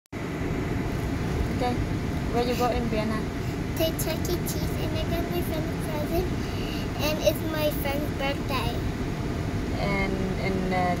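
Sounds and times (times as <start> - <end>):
car rumble inside cabin: 0.5 - 11.0.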